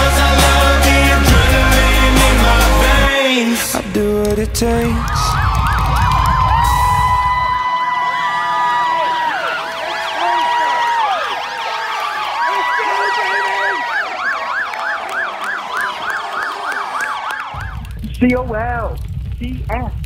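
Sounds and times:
heavy bass music: 0.0 - 3.2, 3.8 - 7.2
emergency sirens wailing: 4.6 - 18.0
siren yelping fast: 5.3 - 18.0.

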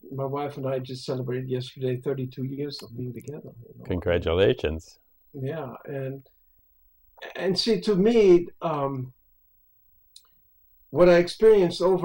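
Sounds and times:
man talking: 0.0 - 6.2, 7.2 - 9.1, 11.0 - 12.0.

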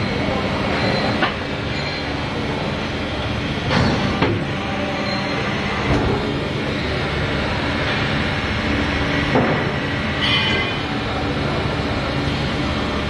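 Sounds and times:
machine mechanical drone: 0.0 - 13.0.

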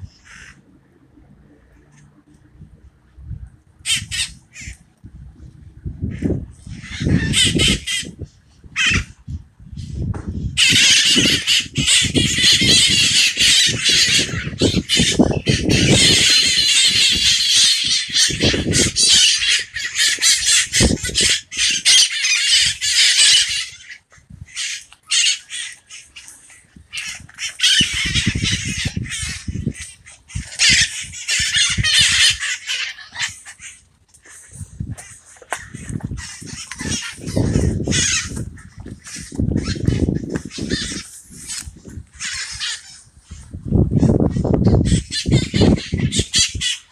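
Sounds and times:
birds squawking: 0.0 - 0.6, 3.8 - 4.9, 6.0 - 46.9.

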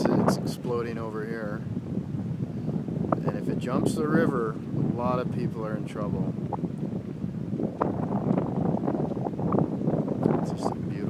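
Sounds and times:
wind blowing across microphone: 0.0 - 11.0.

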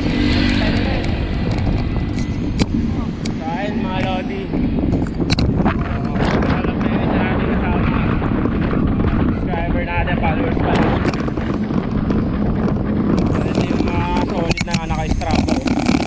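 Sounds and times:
wind rumble on microphone: 0.0 - 16.0
muffled man's voice: 2.8 - 4.6, 5.7 - 8.2, 9.4 - 11.1, 13.3 - 16.0.

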